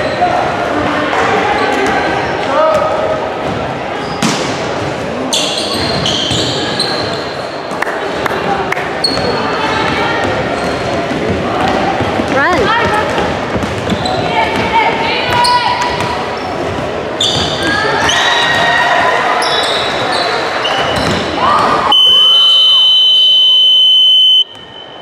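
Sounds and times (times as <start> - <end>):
sneakers squeaking: 5.3 - 7.6, 9.0 - 9.5, 10.2 - 11.2, 13.6 - 18.8, 19.4 - 23.0
players calling out: 21.6 - 24.5
scoreboard buzzer: 21.9 - 24.5.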